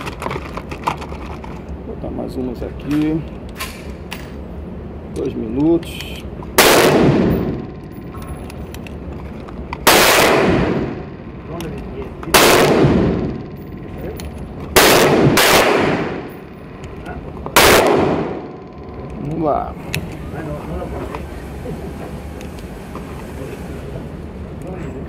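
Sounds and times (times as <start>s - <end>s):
pistol shots echoing indoors: 6.6s - 7.6s, 9.9s - 11.0s, 12.3s - 13.4s, 14.8s - 16.4s, 17.6s - 18.6s.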